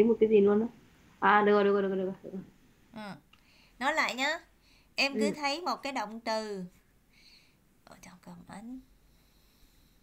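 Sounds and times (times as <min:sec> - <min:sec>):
person whispering: 0:07.9 - 0:08.9.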